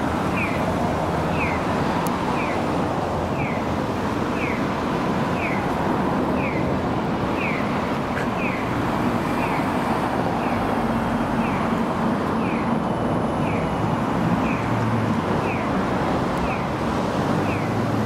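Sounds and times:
passing cars: 0:00.0 - 0:18.0.

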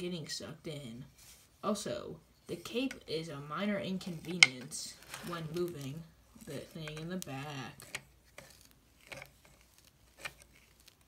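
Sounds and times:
soft fabric rustles: 0:00.7 - 0:11.0.

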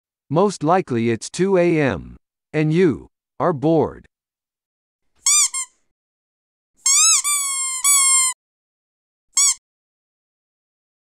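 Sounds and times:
squeaky toy squeaks: 0:05.2 - 0:05.8, 0:06.8 - 0:08.4, 0:09.4 - 0:09.6.

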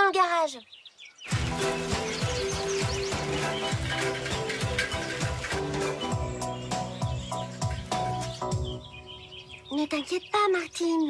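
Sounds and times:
bright melody with bass and beat: 0:01.3 - 0:09.2.

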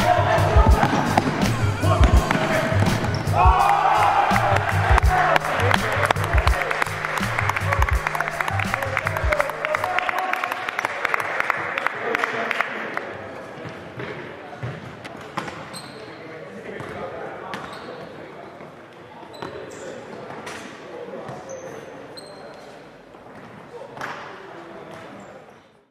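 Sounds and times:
music with pulsing bass beat: 0:00.0 - 0:09.6
voices shouting and talking: 0:00.0 - 0:10.2
shoe squeaks: 0:02.3 - 0:03.4, 0:15.7 - 0:16.2, 0:17.6 - 0:18.2, 0:19.2 - 0:20.1, 0:21.3 - 0:22.8.

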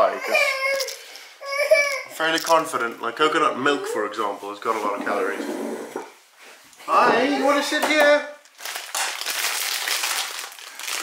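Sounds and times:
plastic packet crinkling: 0:08.4 - 0:11.0.

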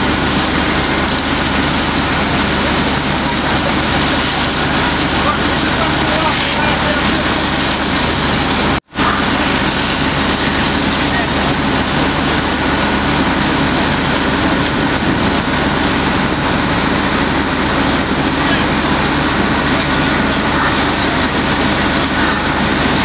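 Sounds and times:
constant rushing noise: 0:00.0 - 0:23.0
engines running: 0:00.0 - 0:23.0
indistinct voices: 0:00.0 - 0:23.0.

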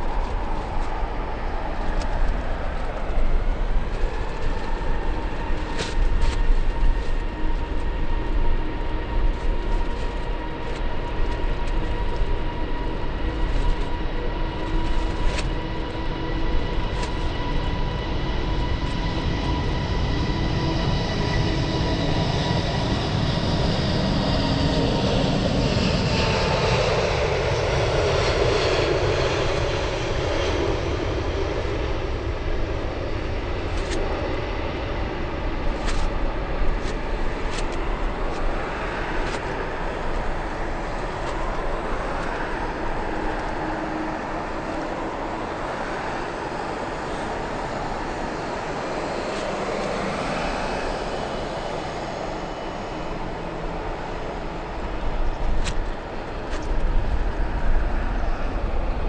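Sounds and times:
jet engine whine: 0:00.0 - 0:59.0.

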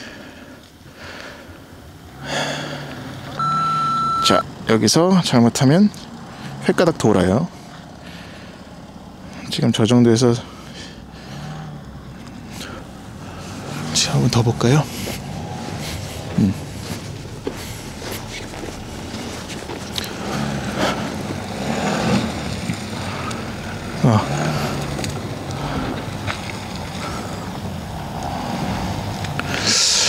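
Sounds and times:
diesel engine low drone: 0:00.0 - 0:30.0
people talking: 0:04.1 - 0:06.0, 0:06.6 - 0:07.5, 0:09.4 - 0:10.5, 0:13.9 - 0:14.9, 0:16.4 - 0:16.7, 0:24.0 - 0:24.6, 0:29.4 - 0:30.0.

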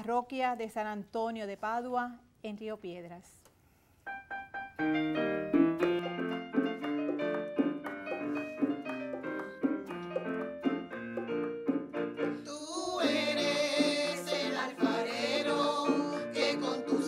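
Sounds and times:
piano playing ringing notes: 0:04.1 - 0:12.4
choir singing: 0:12.5 - 0:17.0.

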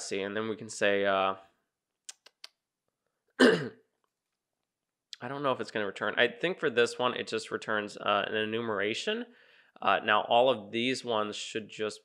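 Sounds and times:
man clearing his throat: 0:03.4 - 0:03.8.

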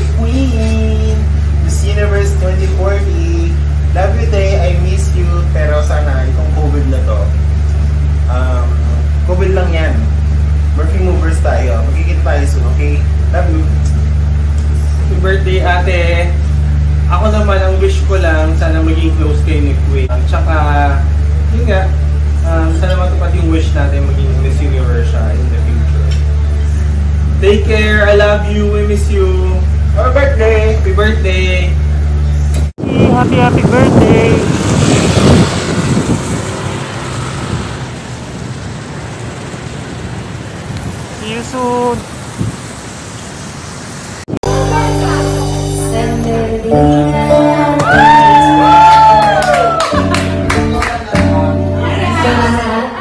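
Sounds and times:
loud low hum: 0:00.0 - 0:42.8, 0:44.3 - 0:53.0
roadside traffic noise: 0:00.0 - 0:53.0.

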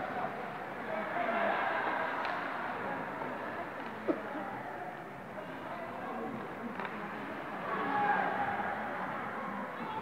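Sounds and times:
hum of arena hall noise: 0:00.0 - 0:10.0.

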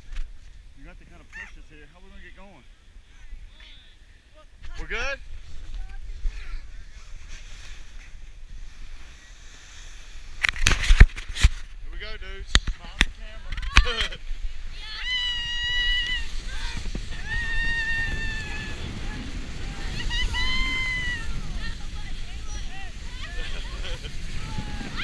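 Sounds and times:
snow tubes scraping on snow: 0:04.8 - 0:12.2, 0:13.1 - 0:25.0
burst of voices: 0:14.7 - 0:25.0
riders yelling: 0:14.7 - 0:25.0.

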